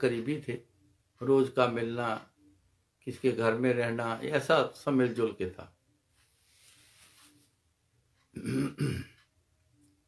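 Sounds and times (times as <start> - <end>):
man clearing his throat: 8.3 - 9.2.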